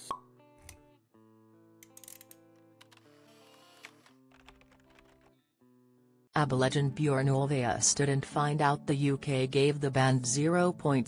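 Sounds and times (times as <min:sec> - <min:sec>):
quiet background music: 0:00.1 - 0:05.3, 0:06.4 - 0:11.0.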